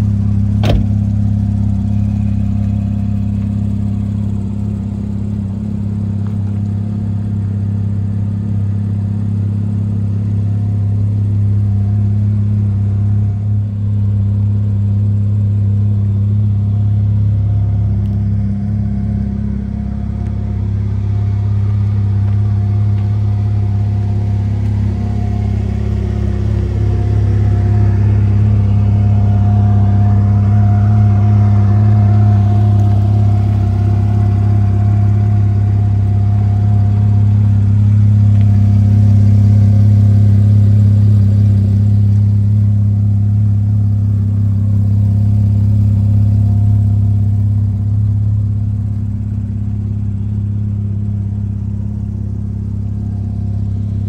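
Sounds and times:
car engine idling: 0.0s - 54.0s.

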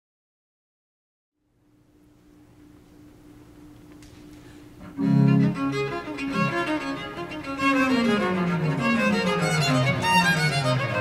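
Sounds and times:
baroque chamber ensemble: 4.9s - 11.0s.

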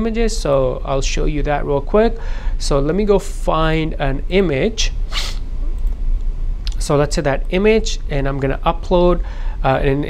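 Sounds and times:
man talking: 0.0s - 5.0s, 6.7s - 10.0s
low steady hum: 0.0s - 10.0s
short hiss: 5.1s - 5.5s.

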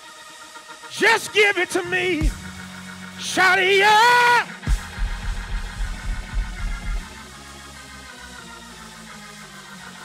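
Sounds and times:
church music: 0.8s - 8.6s
man shouting a drawn-out note: 0.9s - 2.4s, 3.2s - 4.7s
bass drum thumps: 4.7s - 7.2s.

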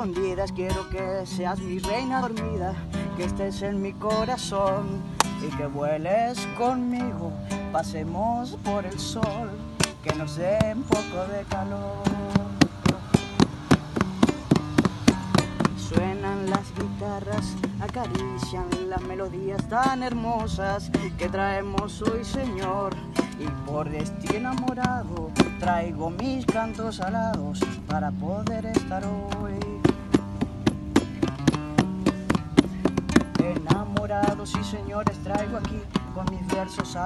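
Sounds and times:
acoustic guitar strumming: 0.0s - 37.0s.

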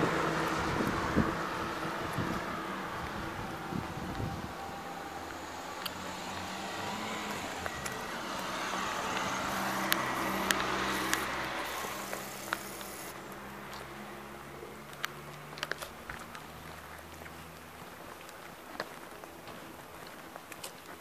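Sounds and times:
car driving past: 0.0s - 17.9s
low engine hum: 0.0s - 20.5s
sharp clicks: 9.1s - 13.2s.

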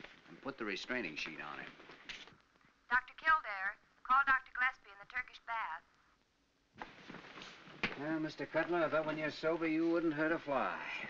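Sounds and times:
woman paging over loudspeaker: 2.9s - 5.9s.

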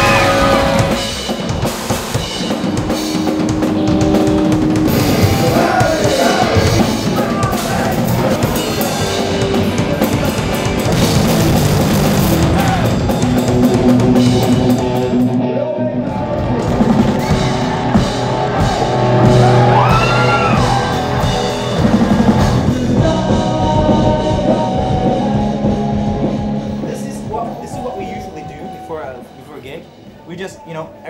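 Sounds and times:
electric guitar: 0.0s - 29.4s
drum kit: 0.0s - 31.0s.

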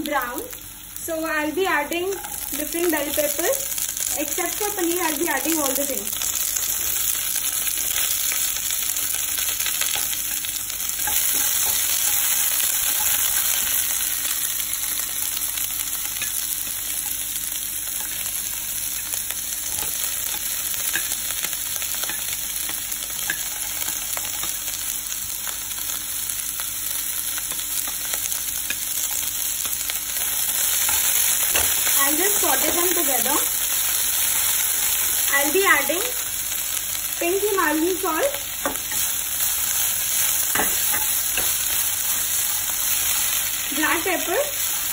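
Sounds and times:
vegetables sizzling in oil: 0.0s - 44.9s
spatula clicking and scraping pan: 6.4s - 15.0s, 15.8s - 24.9s, 27.2s - 33.0s, 38.6s - 44.9s.

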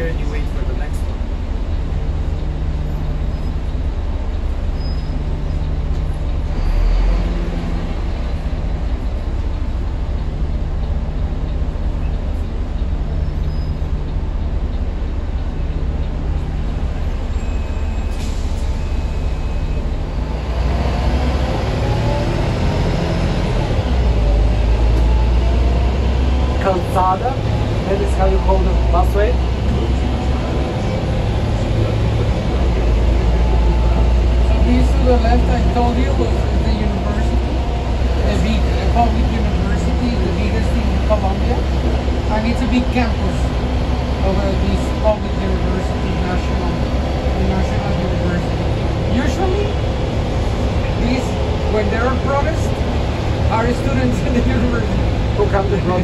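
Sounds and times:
bus engine and road rumble: 0.0s - 56.0s
rising bus whine: 0.0s - 56.0s.

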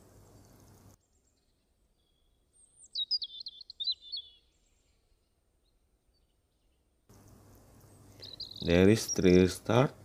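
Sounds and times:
songbird chirping: 0.0s - 10.0s.

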